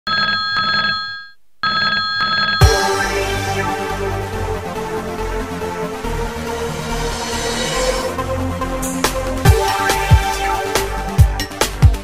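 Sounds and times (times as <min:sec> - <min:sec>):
old telephone ringing: 0:00.1 - 0:02.7.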